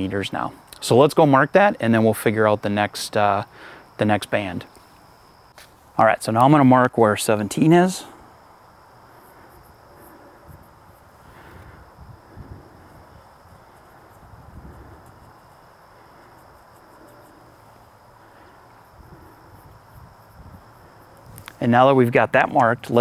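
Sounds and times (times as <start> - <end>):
high-pitched insect trill: 0.0 - 23.0.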